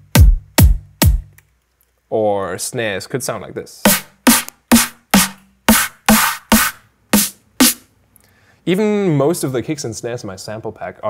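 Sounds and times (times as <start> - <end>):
snare drum hits: 3.9 - 7.8.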